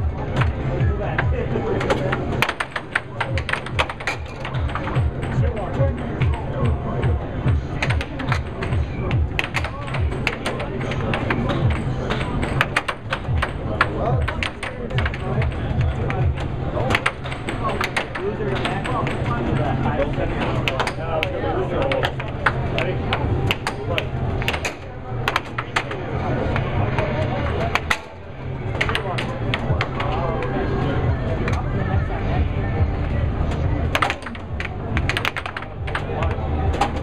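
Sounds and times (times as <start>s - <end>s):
air hockey puck clacking: 1.2s - 30.5s, 33.5s - 37.0s.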